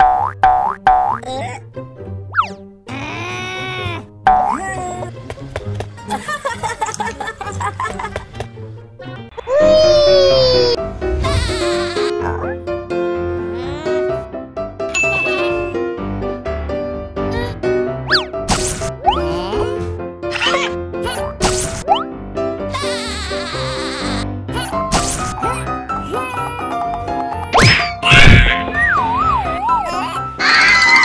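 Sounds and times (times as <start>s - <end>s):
background music: 0.0s - 31.0s
cartoon ding: 14.9s - 15.8s.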